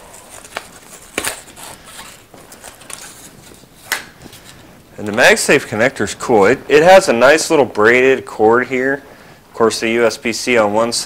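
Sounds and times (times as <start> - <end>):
paper packaging rustling: 0.0 - 5.4.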